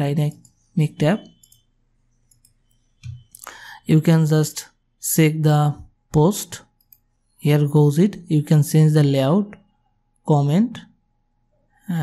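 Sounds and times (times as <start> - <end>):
computer mouse clicks: 1.4 - 3.4.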